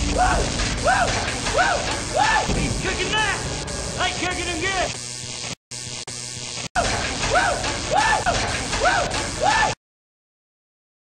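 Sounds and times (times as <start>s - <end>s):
noisy backing: 0.0s - 5.6s
man shouting woo: 0.2s - 2.6s, 7.3s - 9.8s.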